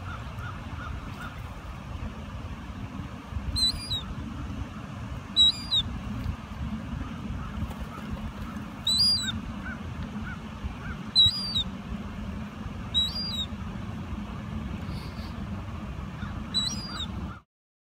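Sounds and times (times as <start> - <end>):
low background rumble: 0.0 - 17.4
gulls calling: 0.0 - 17.5.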